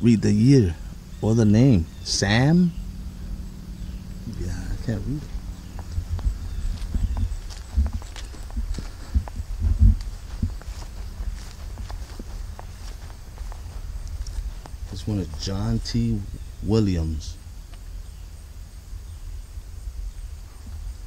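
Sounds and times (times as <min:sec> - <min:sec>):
footsteps on grass: 0:00.3 - 0:17.9.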